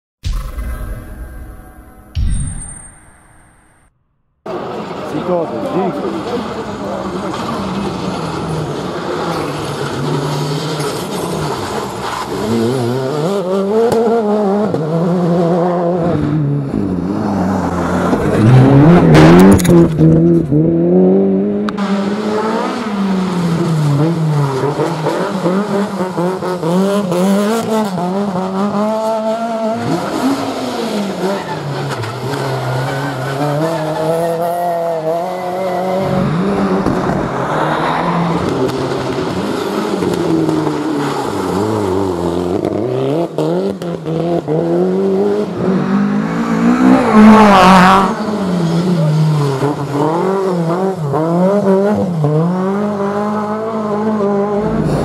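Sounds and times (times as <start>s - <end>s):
rally car engines revving: 4.5s - 55.0s
car passing close: 35.7s - 42.7s.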